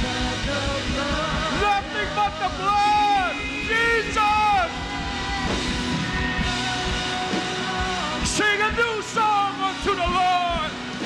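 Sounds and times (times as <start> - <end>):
bass guitar: 0.0 - 11.0
drums: 0.0 - 11.0.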